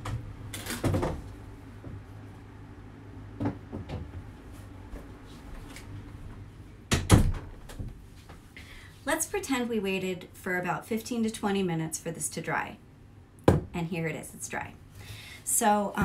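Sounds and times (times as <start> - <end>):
closet door opening and closing: 0.0 - 1.4, 6.9 - 8.0.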